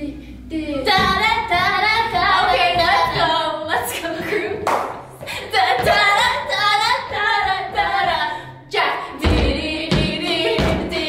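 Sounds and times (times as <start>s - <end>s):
women singing unaccompanied: 0.0s - 4.6s, 5.3s - 11.0s.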